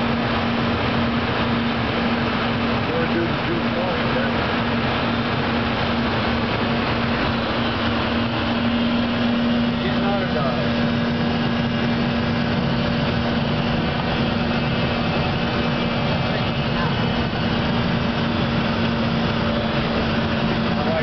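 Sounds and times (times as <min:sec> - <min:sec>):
jet cabin rushing drone: 0:00.0 - 0:21.0.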